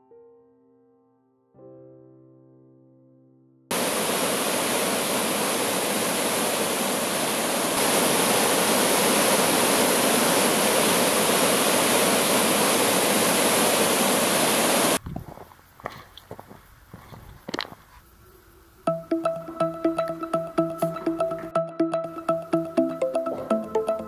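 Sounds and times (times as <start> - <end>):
water rushing over rocks: 3.7 - 15.0.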